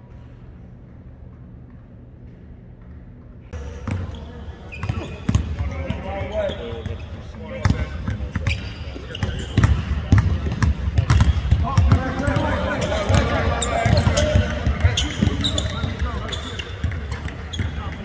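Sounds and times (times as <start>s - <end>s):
voices talking: 3.6s - 18.0s
basketballs bouncing on hardwood: 7.6s - 18.0s.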